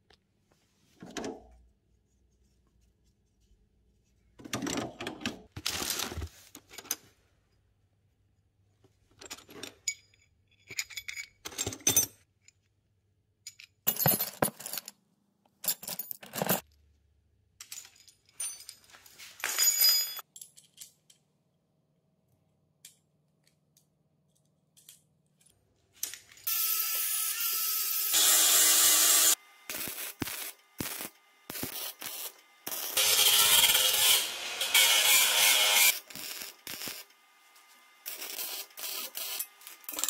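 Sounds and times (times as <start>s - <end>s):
metal brackets and bolts clinking: 9.2s - 12.7s, 17.6s - 21.3s
metal parts clinking in box: 15.6s - 16.6s, 38.1s - 40.0s
welder crackling hiss: 28.2s - 34.1s, 35.5s - 37.1s.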